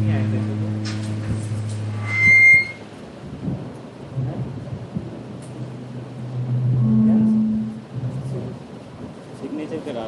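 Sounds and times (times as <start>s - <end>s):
microphone feedback squeal: 0.1s - 2.9s, 6.2s - 8.1s.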